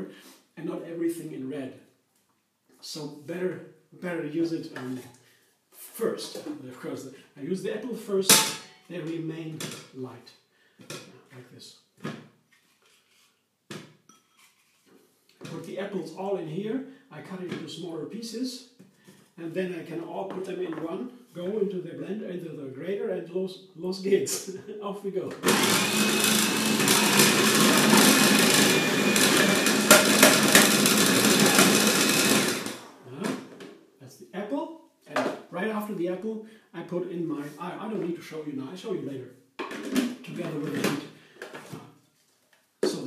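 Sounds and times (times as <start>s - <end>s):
faint ringing clink: 14.1s - 14.4s
food processor shredding apple: 25.4s - 33.0s.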